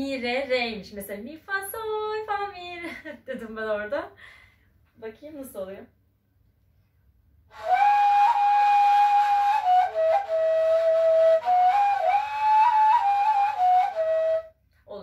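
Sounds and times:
end-blown flute melody: 7.5 - 14.5.

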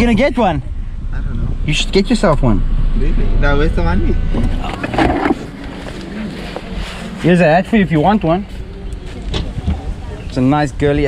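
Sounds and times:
wind rumbling on microphone: 8.4 - 11.0.

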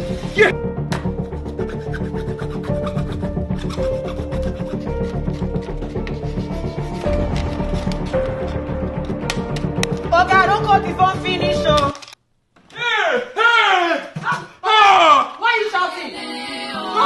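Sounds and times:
background music: 0.0 - 12.2, 15.7 - 17.0
hand saw rasping through plastic: 1.4 - 8.6.

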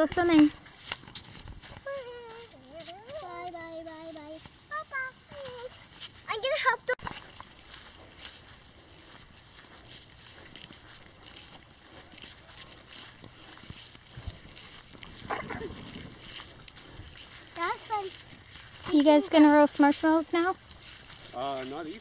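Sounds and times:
footsteps running on grass: 0.0 - 22.0
child's voice: 1.8 - 7.0, 17.6 - 18.2.

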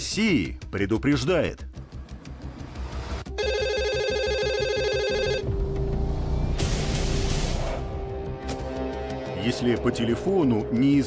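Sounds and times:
background music: 0.0 - 11.0
telephone ringing: 3.3 - 5.5.

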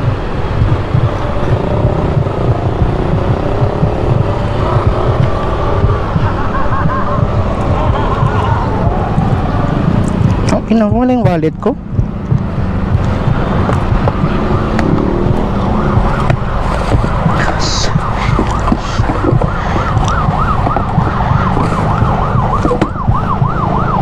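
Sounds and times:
low rumble: 0.0 - 24.0
siren yelping: 0.1 - 10.5, 12.4 - 24.0.

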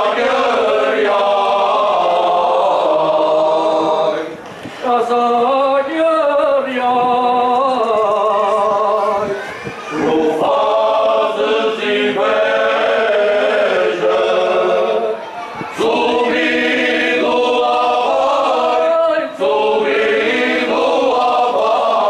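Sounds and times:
men's choir singing unaccompanied: 0.0 - 9.2, 9.9 - 22.0.

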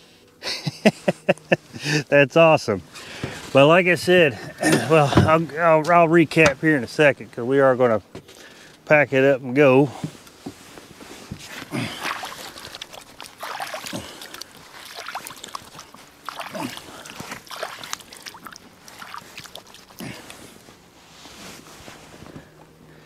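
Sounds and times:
light knocks and rustling: 9.9 - 11.6.

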